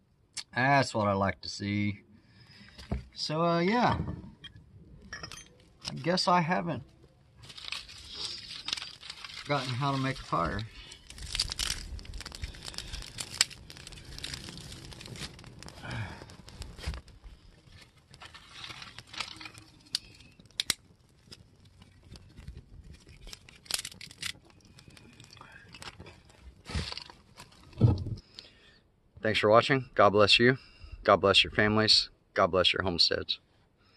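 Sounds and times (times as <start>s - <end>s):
fire crackling and popping: 2.3s - 28.6s
loud thump: 27.8s - 28.2s.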